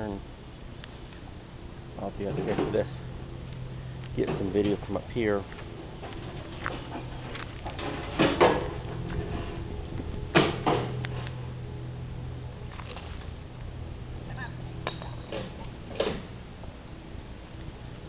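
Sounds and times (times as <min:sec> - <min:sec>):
sharp metallic clinks: 0:14.4 - 0:16.1.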